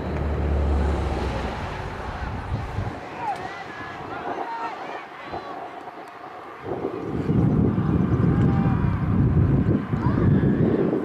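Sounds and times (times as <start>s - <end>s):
distant shouting voices: 0.0s - 11.0s
wind buffeting microphone: 0.0s - 11.0s.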